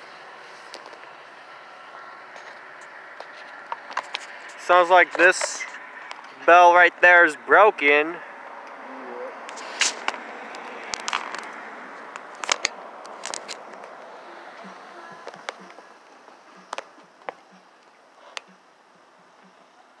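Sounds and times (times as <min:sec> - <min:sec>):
steady background noise: 0:00.0 - 0:20.0.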